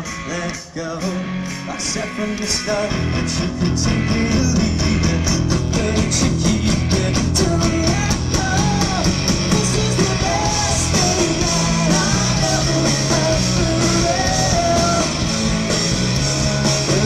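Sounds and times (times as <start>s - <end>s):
person singing: 0.0s - 15.4s, 16.5s - 17.0s
bass guitar: 0.0s - 17.0s
electric guitars: 0.0s - 17.0s
steady drum beat: 2.9s - 17.0s.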